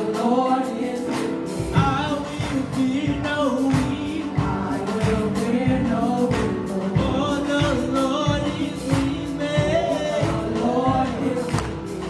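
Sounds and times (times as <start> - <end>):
choir singing gospel song: 0.0 - 12.0
keyboard accompaniment: 0.0 - 12.0
steady beat: 0.0 - 12.0.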